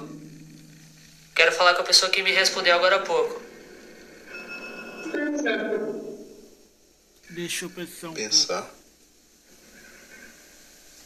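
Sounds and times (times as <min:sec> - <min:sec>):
steady radio tones: 0:09.4 - 0:11.0.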